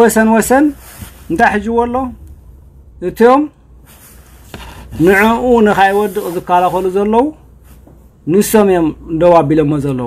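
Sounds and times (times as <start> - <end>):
man speaking in drawn-out phrases: 0.0 - 2.2.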